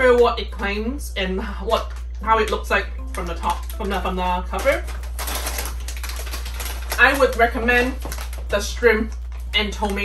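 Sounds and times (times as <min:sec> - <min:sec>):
plastic chip bag crinkling: 0:01.8 - 0:10.0.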